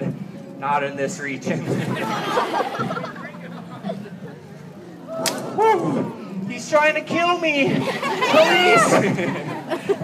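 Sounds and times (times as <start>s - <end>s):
faint crowd murmur: 0.0s - 10.0s.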